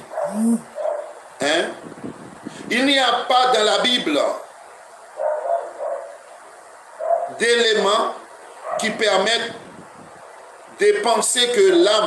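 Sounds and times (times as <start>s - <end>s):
dog barking: 0.0s - 1.2s, 5.2s - 6.2s, 7.0s - 7.4s, 8.6s - 9.0s.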